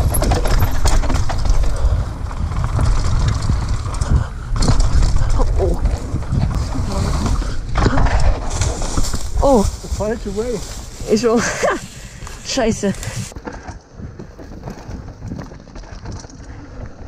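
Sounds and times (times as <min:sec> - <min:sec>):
bike tyre rumble on dirt trail: 0:00.0 - 0:17.0
wind buffeting microphone: 0:00.0 - 0:17.0.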